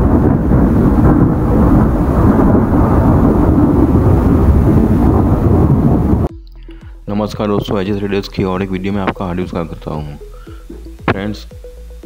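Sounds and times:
thunder low rumble: 0.0s - 6.4s.

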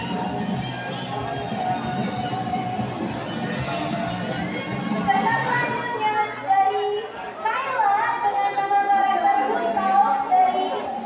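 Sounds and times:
crowd voices in a hall: 0.0s - 11.0s.

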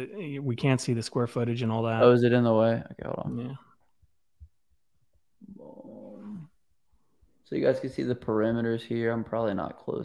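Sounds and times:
man humming hmm: 5.4s - 6.6s.

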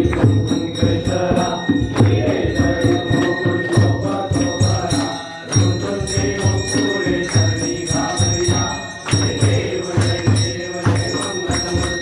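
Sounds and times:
bell ringing: 0.0s - 12.0s
men chanting a devotional song: 0.0s - 12.0s
rhythmic clapping: 0.0s - 12.0s.

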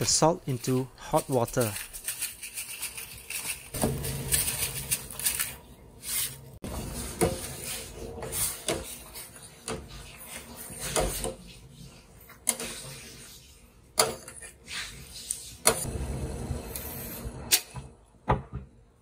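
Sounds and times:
metal ladle scraping saucepan: 1.5s - 15.9s
water boiling: 3.7s - 17.8s.

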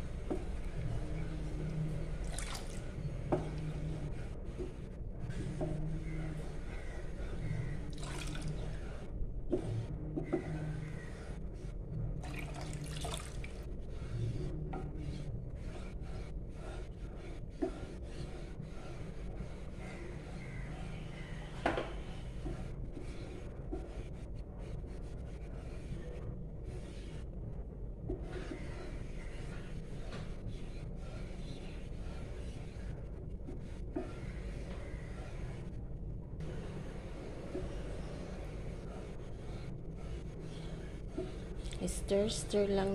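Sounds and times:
steady low hum: 0.0s - 42.9s.

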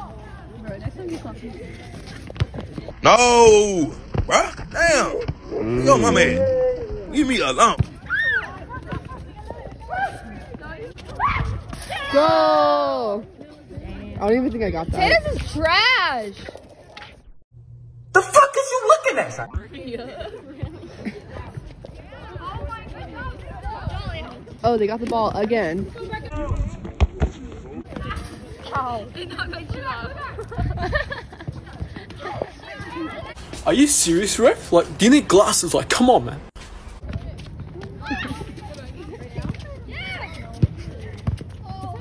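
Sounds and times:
distant people shouting: 3.0s - 8.7s
ball kicked on hard court: 26.4s - 28.1s.

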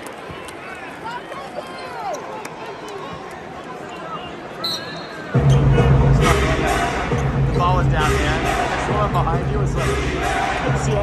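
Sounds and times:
arena crowd murmur: 0.0s - 11.0s
pa music with heavy bass: 5.4s - 11.0s.

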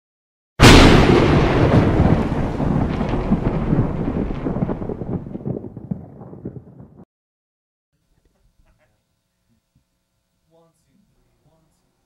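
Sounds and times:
loud crash: 0.6s - 6.8s.

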